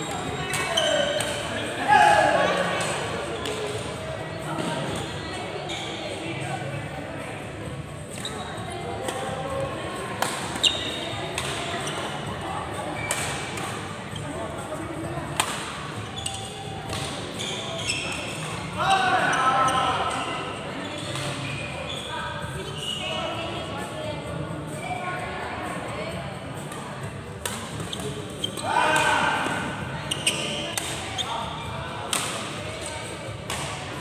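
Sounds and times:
racket hitting shuttlecock: 11.3s - 11.6s, 15.4s - 15.7s, 16.9s - 17.2s, 30.7s - 31.0s, 32.1s - 32.5s.

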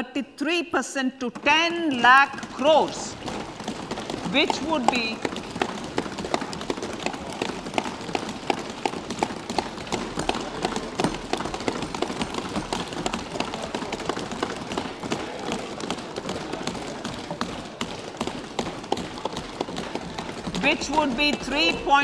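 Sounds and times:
hands thumping wooden desks: 1.3s - 22.0s.

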